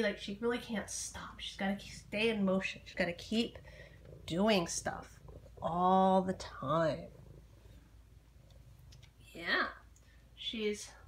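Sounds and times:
cat purring: 0:00.0 - 0:10.3.

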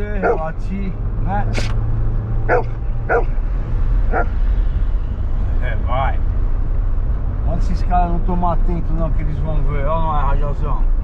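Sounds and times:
car engine and road drone: 0:00.0 - 0:11.0
dog barking: 0:00.2 - 0:00.5, 0:02.5 - 0:03.4, 0:04.1 - 0:04.4.

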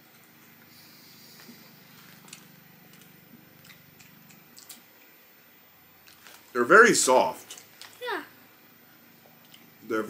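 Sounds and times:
low hum: 0:00.0 - 0:06.1
people chewing: 0:01.4 - 0:04.9.

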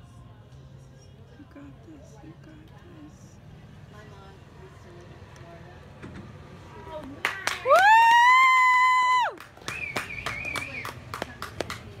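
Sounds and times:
spectators clapping: 0:07.2 - 0:12.0
high-pitched woo cheer: 0:07.7 - 0:10.9.

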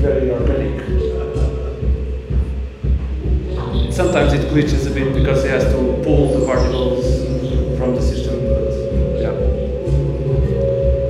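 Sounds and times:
deep bass pulse: 0:00.0 - 0:11.0
electronic music: 0:00.0 - 0:11.0
steady held tones: 0:00.0 - 0:11.0.

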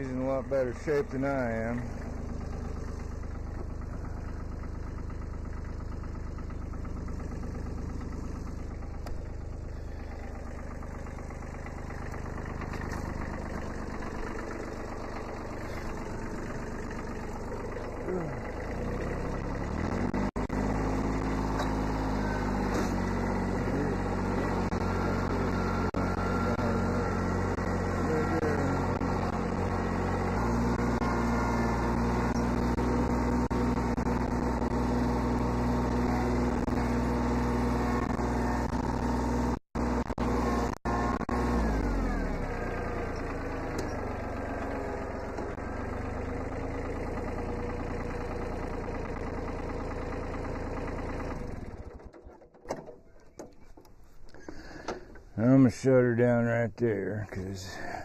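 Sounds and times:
diesel tractor engine idling: 0:00.0 - 0:58.0.

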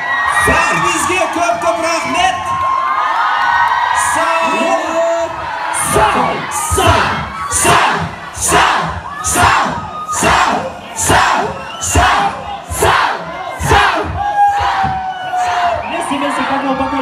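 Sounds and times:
crowd shouting in rhythm: 0:02.1 - 0:17.0.

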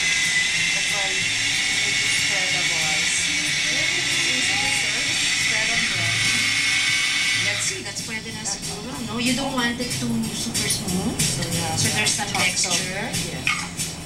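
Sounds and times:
food processor whining: 0:00.0 - 0:08.1.

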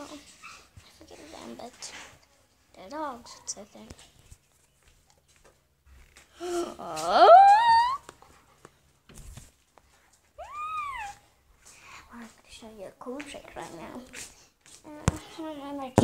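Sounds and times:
dog whining: 0:07.1 - 0:08.1, 0:10.4 - 0:11.2.

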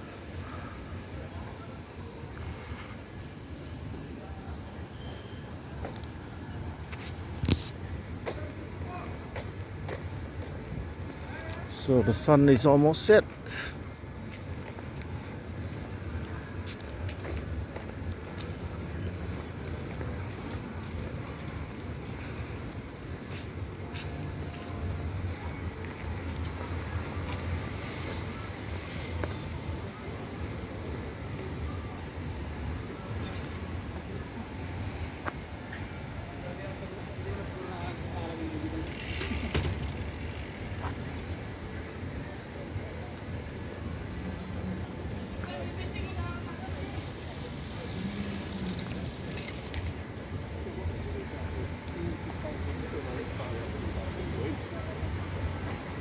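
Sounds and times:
faint indistinct voices: 0:00.0 - 0:56.0
urban ambience low rumble: 0:00.0 - 0:56.0.

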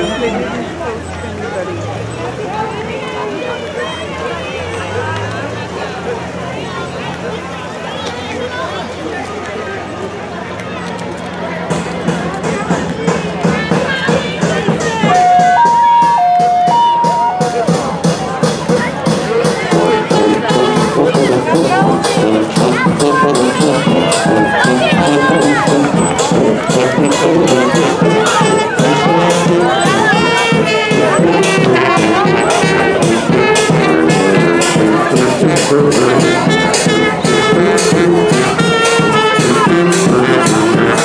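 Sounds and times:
crowd chatter: 0:00.0 - 0:41.0
people's voices: 0:00.0 - 0:41.0
steady beat: 0:11.5 - 0:41.0
brass band playing: 0:15.0 - 0:41.0
two-note tone: 0:15.1 - 0:17.8.

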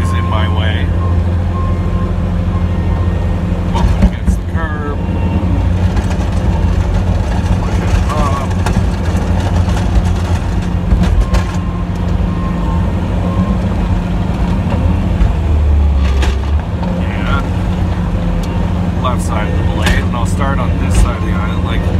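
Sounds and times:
plow pushing snow: 0:00.0 - 0:21.9
truck engine running: 0:00.0 - 0:21.9.

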